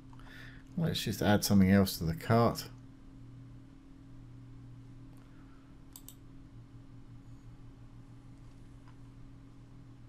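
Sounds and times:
low steady hum: 0.0 - 10.0
computer mouse clicks: 5.9 - 6.2.

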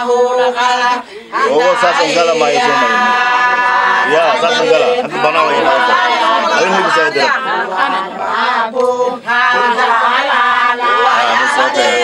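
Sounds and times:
group of voices chanting: 0.0 - 12.0.

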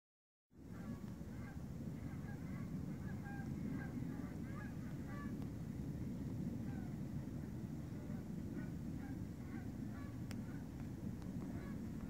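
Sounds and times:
steady low rumble: 0.6 - 12.0
geese honking: 0.7 - 5.4, 8.0 - 10.7, 11.4 - 11.9.

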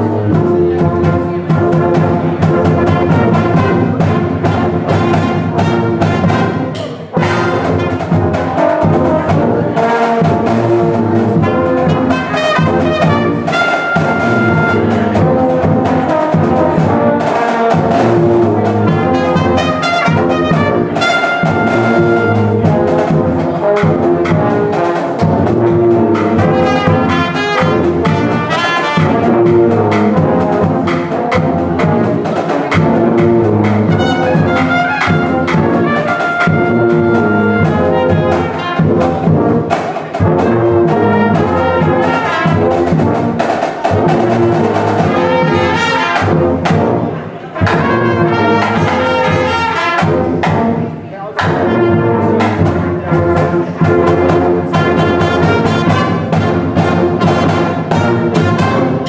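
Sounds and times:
bugles playing: 0.0 - 50.8, 51.4 - 59.0
bass drum and percussion: 0.0 - 59.0.

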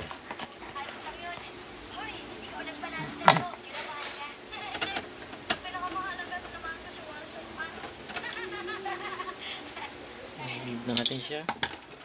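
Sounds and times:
voices talking in background: 0.0 - 11.5.

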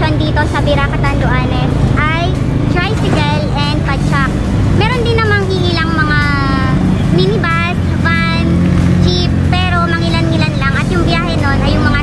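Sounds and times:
woman talking: 0.0 - 8.5
motorcycle engine humming: 0.0 - 12.0.

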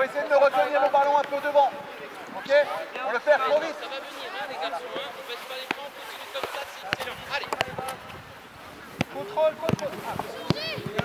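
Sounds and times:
distant voices of players: 0.0 - 11.0
football being kicked: 9.0 - 11.0.

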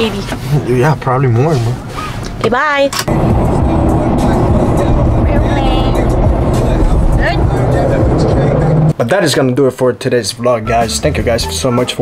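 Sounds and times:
car driving rumble from cabin: 3.1 - 9.0.

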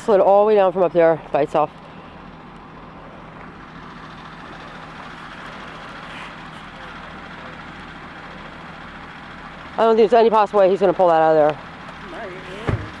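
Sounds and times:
outdoor noise: 0.0 - 13.0
truck engine running: 0.0 - 13.0.

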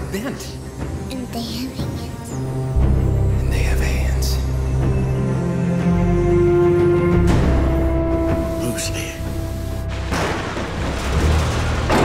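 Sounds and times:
heavy rain pouring: 7.3 - 12.0.

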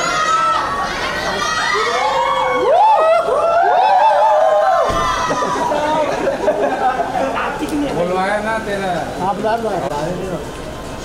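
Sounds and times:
crowd cheering and shouting: 0.0 - 7.6.

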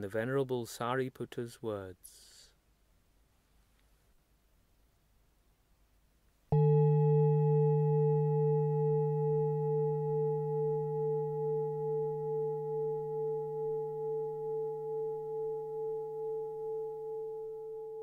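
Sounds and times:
singing bowl ringing: 6.5 - 18.0.

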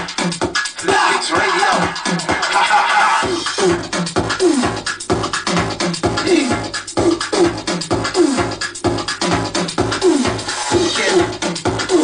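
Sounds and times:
electro house music: 0.0 - 12.0.

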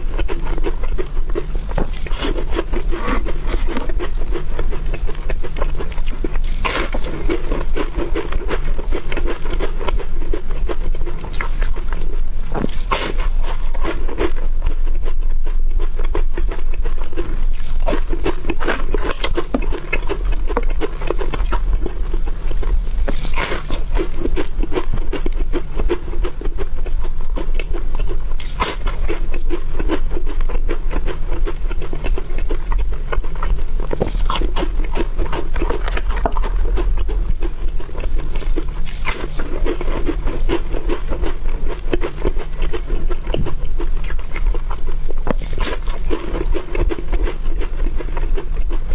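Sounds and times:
crunching and chewing wafers: 0.0 - 48.9.

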